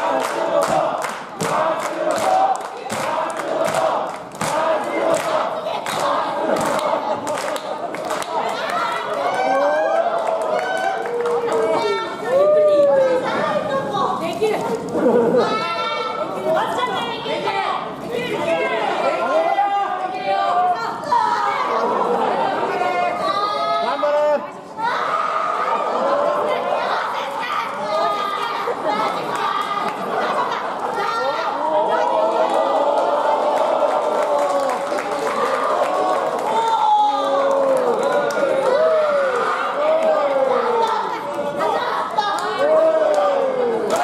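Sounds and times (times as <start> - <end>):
crowd chatter: 0.0 - 44.0.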